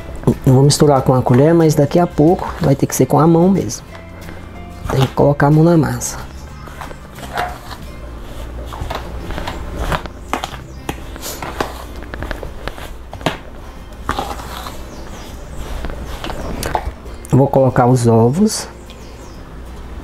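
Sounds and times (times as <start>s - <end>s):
background music: 0.0s - 20.0s
metal spoon scraping metal bowl: 14.1s - 16.7s.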